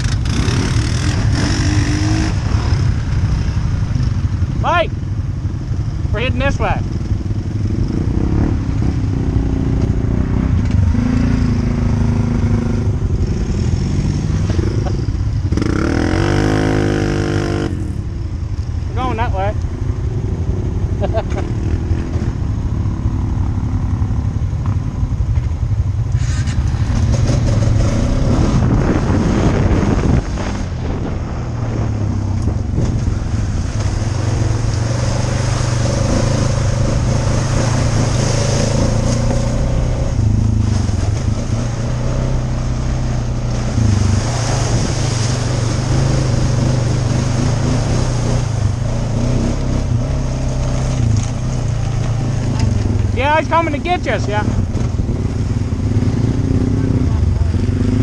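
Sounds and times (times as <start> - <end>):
atv engine running: 0.0 - 58.0.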